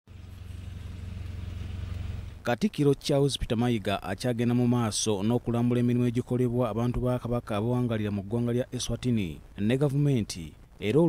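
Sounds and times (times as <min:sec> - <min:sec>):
car engine running: 0:00.1 - 0:02.5.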